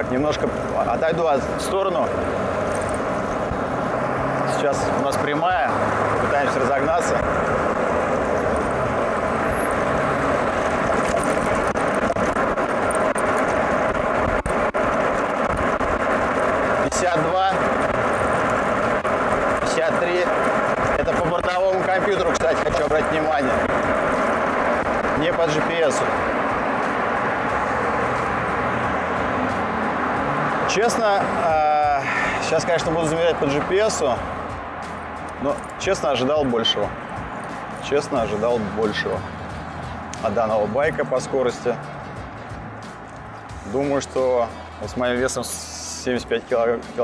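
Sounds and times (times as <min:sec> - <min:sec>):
road noise: 0:00.0 - 0:47.0
wind rush: 0:01.5 - 0:21.6.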